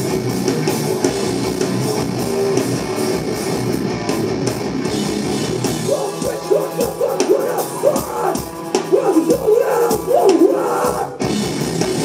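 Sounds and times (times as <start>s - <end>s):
choppy distorted guitar riff: 0.0s - 12.0s
metallic hardcore band playing live: 0.0s - 12.0s.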